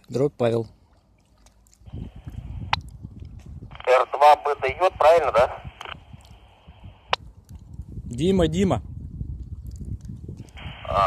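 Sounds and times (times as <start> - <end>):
low microphone rumble: 1.9 - 11.0
radio squelch hiss: 3.7 - 7.2, 10.5 - 11.0.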